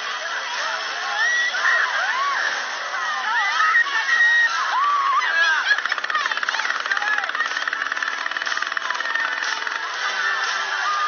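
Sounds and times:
voices whooping and shouting: 0.3s - 9.7s, 10.3s - 11.0s
fast mechanical rattle: 4.7s - 10.7s.

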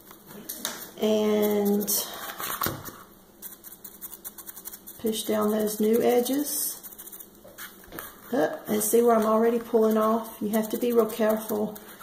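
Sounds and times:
sponge brush dabbing ticks: 0.0s - 2.0s, 3.4s - 7.8s, 8.7s - 12.0s.

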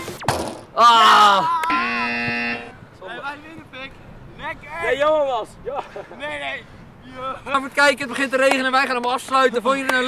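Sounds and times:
buzzer-like horn tone: 1.7s - 2.8s.

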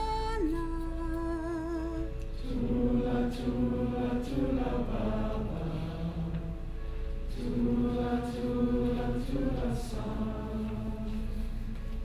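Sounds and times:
woman singing a lullaby: 0.0s - 2.2s.

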